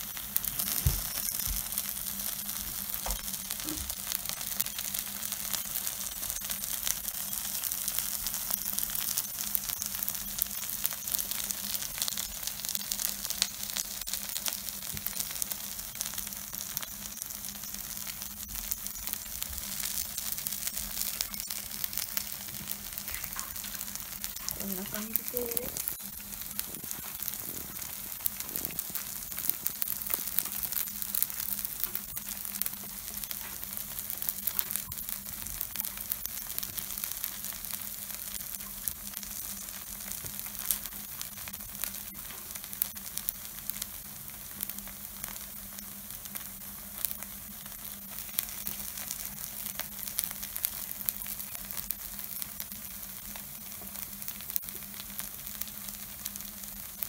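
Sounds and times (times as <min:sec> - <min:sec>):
batter sizzling on hot plate: 0:00.0 - 0:57.0
low steady hum: 0:13.2 - 0:34.3.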